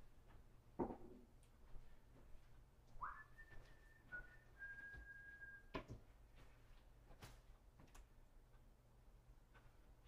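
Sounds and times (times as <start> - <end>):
faint person whistling: 3.0 - 5.8.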